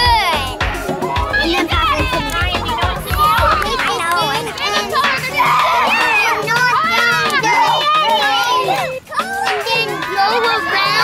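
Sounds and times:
children chattering and shouting: 0.0 - 11.0.

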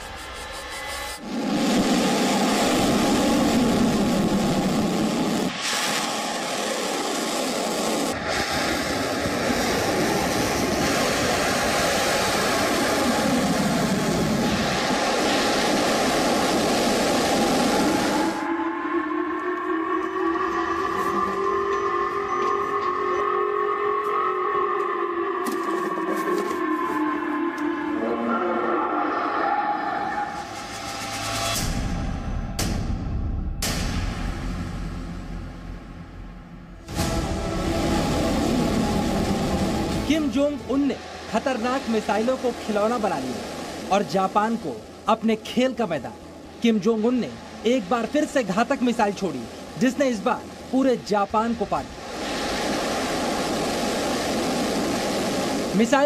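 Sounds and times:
rocket exhaust roar: 1.1 - 24.0, 34.0 - 42.6
warning siren wailing: 9.6 - 31.2, 36.8 - 43.9.

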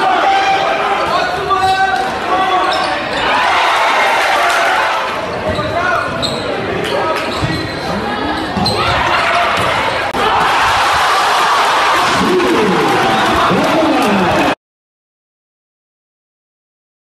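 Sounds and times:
spectators talking and calling out: 0.0 - 14.6.

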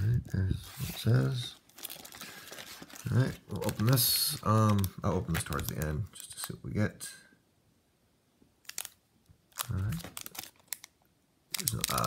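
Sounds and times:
foil wrapper crinkling: 0.7 - 6.6, 8.7 - 12.0.

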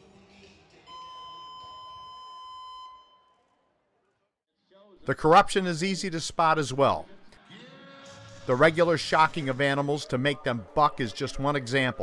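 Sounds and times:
steady electronic beep: 0.9 - 3.4.

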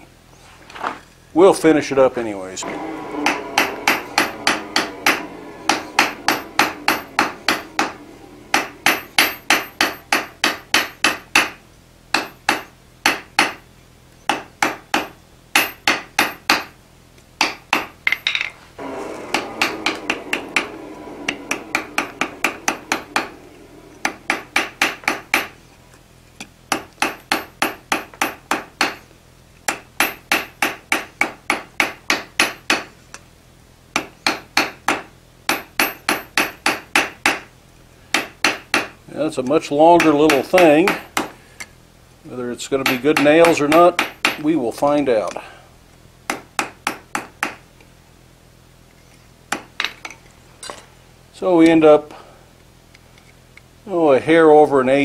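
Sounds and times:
hammer striking iron on anvil: 2.6 - 13.6, 14.3 - 16.8, 17.4 - 25.6, 26.7 - 29.0, 29.7 - 32.9, 34.0 - 37.5, 38.1 - 39.0, 40.0 - 41.4, 42.8 - 44.5, 46.3 - 47.6.

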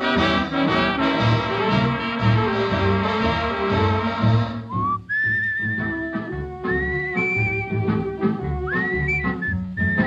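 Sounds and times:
plucked rhythm accompaniment: 0.0 - 10.0
whistled melody: 4.6 - 10.0.

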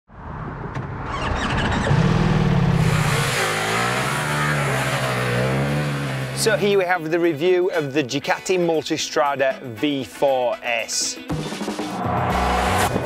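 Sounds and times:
motorcycle engine revving: 1.1 - 6.8.

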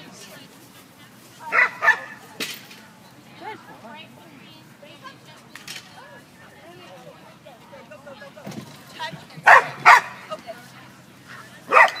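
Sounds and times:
dog barking: 1.5 - 2.2, 9.4 - 10.2, 11.7 - 12.0.

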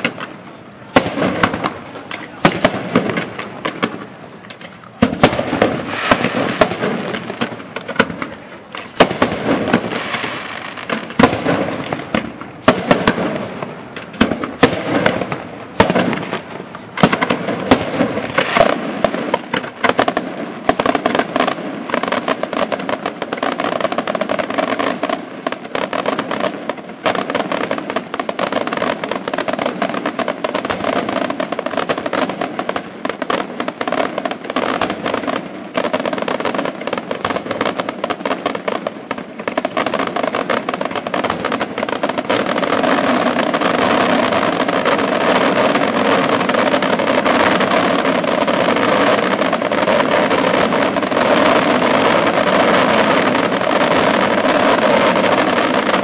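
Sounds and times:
fireworks bursting and crackling: 0.0 - 56.0.

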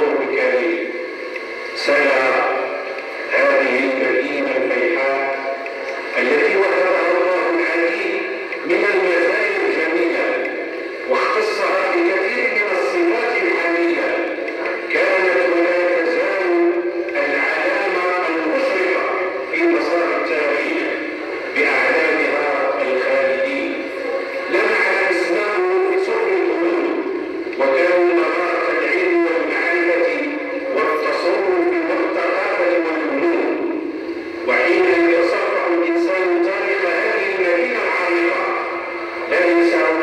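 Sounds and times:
man reading over sound system: 0.0 - 40.0.

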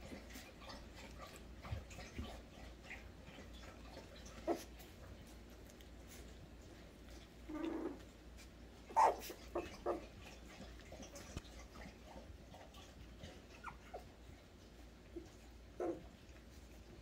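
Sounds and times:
puppies whimpering and squeaking: 8.8 - 11.4, 12.8 - 14.4
puppy yip: 8.9 - 10.0.

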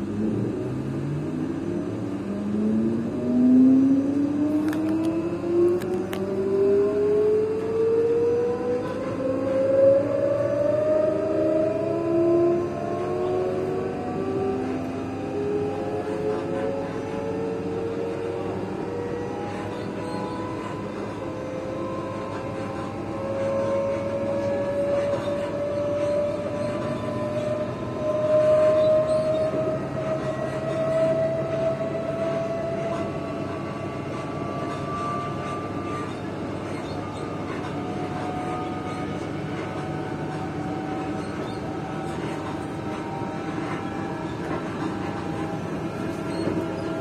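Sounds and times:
train traction motors whining: 0.0 - 47.0
wheels rumbling on rails: 0.0 - 47.0.

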